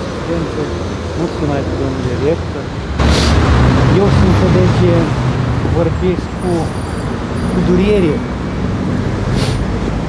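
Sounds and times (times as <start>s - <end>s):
short hiss: 3.0s - 3.4s, 9.4s - 9.6s.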